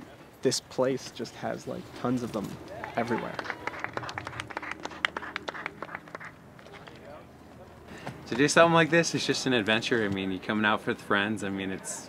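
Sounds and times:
quiet outdoor background: 0.0 - 12.0.

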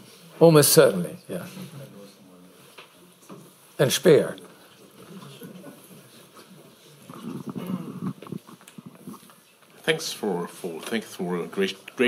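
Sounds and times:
faint muffled voice: 4.5 - 9.4.

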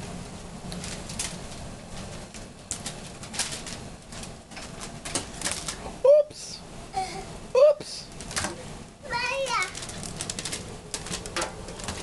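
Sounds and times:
rustling: 9.4 - 12.0.

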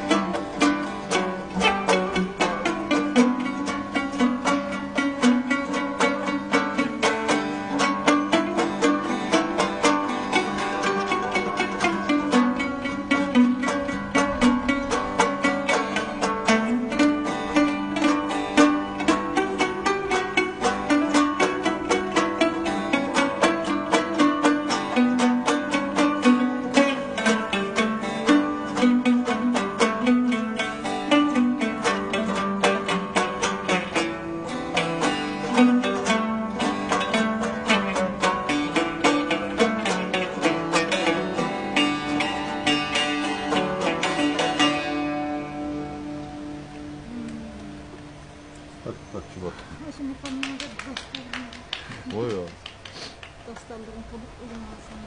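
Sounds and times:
plucked lutes playing folk melody: 0.0 - 55.0.

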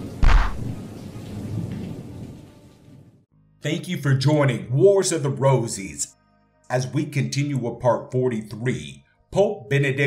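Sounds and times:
thunder rumble: 0.0 - 3.2
rain hiss: 0.0 - 3.3.

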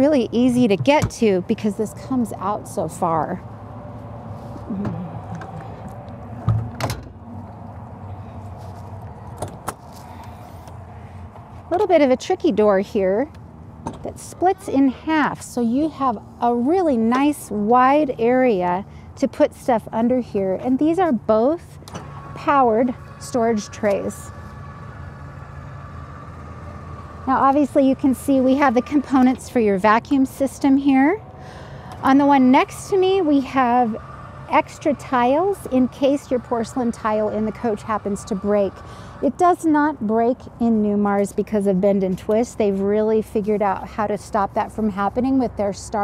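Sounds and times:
steady low hum: 0.0 - 46.0
electric motor humming: 20.9 - 41.2.

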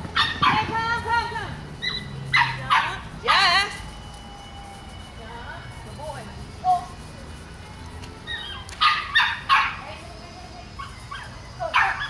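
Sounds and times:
dog barking: 0.2 - 0.7, 1.8 - 3.5, 8.8 - 9.8, 11.1 - 12.0.

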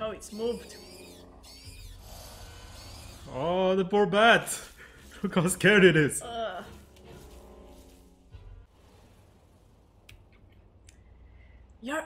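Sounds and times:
bat squeaks: 0.0 - 3.3
low background hum: 4.8 - 12.0.

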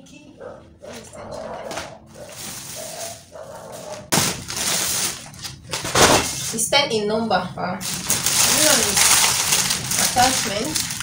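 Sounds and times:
plastic packaging rustling: 2.2 - 6.7, 7.8 - 11.0.

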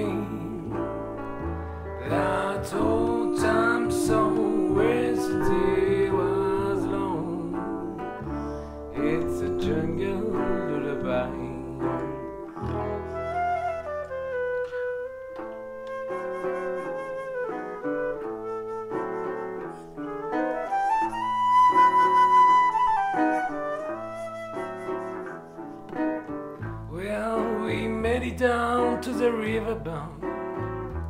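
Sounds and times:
resonator guitar chords: 0.0 - 25.0
ukulele bass: 0.0 - 31.0
flute playing jazz melody: 2.0 - 7.3, 8.2 - 26.6.

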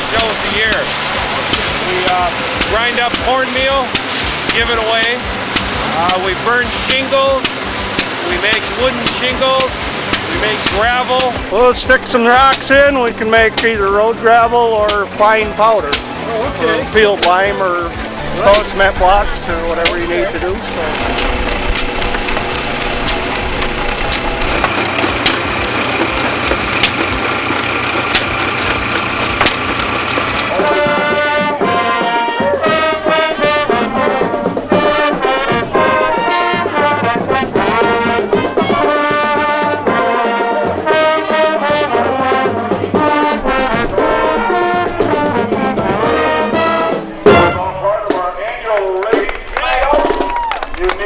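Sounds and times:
old machinery running with ticks: 0.0 - 31.8
brass band playing a march: 0.0 - 50.4
sudden loud knock: 47.2 - 47.8.

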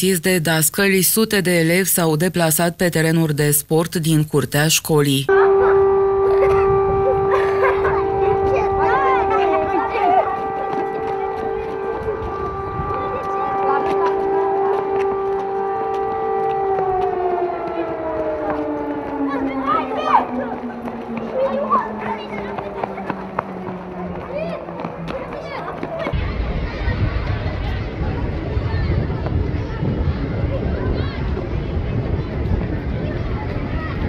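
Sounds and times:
civil defence siren: 5.3 - 26.2.

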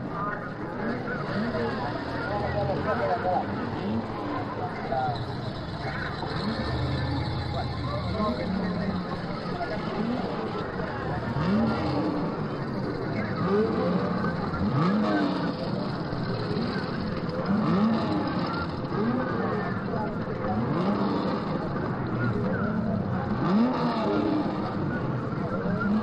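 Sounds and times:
background voices: 0.0 - 26.0
racing engines revving: 0.0 - 26.0.

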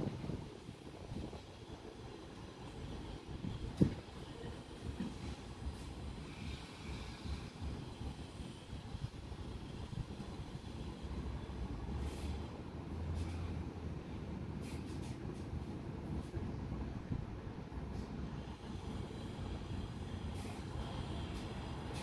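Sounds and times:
low outdoor rumble: 0.0 - 22.0.

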